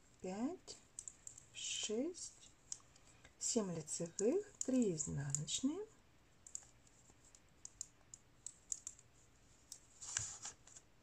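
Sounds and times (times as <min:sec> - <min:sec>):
knitting needles clicking: 0:00.9 - 0:03.1, 0:03.8 - 0:05.8, 0:06.4 - 0:09.9.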